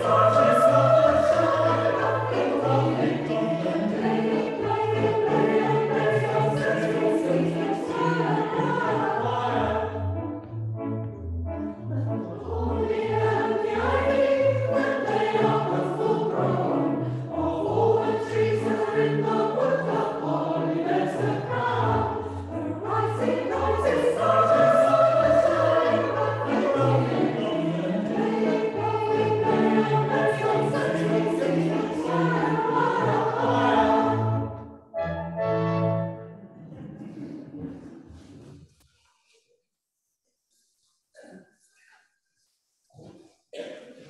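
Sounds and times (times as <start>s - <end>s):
choir singing in parts: 0.0s - 10.3s, 11.9s - 34.7s.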